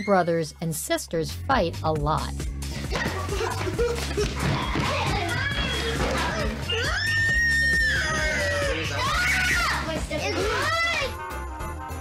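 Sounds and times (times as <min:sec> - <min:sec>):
children screaming and shouting: 0:03.0 - 0:11.2
child shrieking: 0:06.6 - 0:09.9.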